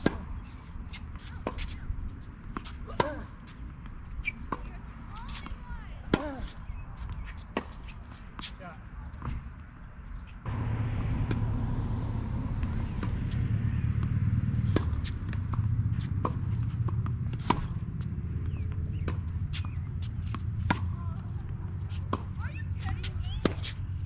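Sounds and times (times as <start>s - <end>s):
tennis balls struck by rackets: 0.0s - 8.6s, 10.4s - 24.0s
tennis balls bouncing on hard court: 0.0s - 9.4s, 10.4s - 24.0s
steady low rumble: 10.4s - 23.6s.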